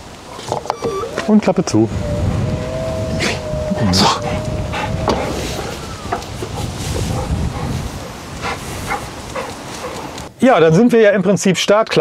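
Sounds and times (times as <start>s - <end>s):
tailgate motor whine: 0.7s - 6.4s.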